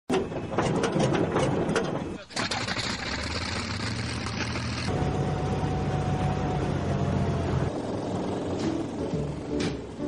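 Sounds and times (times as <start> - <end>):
machinery low rumble: 4.9 - 10.0.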